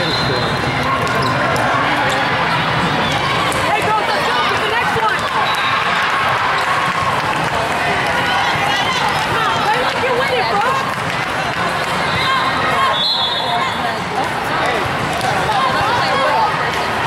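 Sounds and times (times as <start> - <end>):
many overlapping voices: 0.0 - 17.0
volleyballs being hit and bouncing: 0.6 - 8.2.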